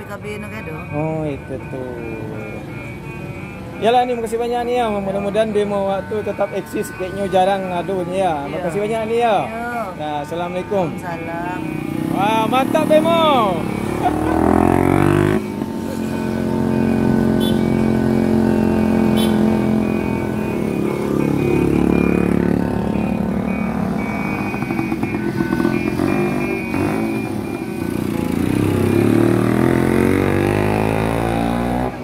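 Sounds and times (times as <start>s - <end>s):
motor scooters riding: 0.0s - 32.0s
three-wheeler engine pulling away: 9.0s - 32.0s.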